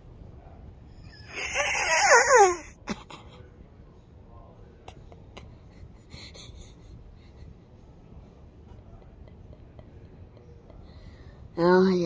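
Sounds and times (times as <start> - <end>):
boy wailing with laughter: 1.2 - 2.8.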